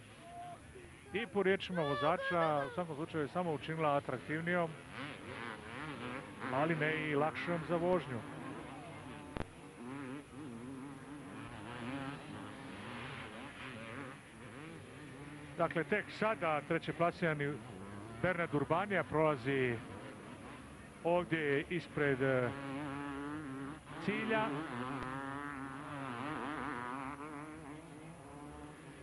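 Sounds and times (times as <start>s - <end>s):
motocross bike engines buzzing: 0.0s - 29.0s
man commentating: 0.8s - 4.7s, 23.9s - 24.7s.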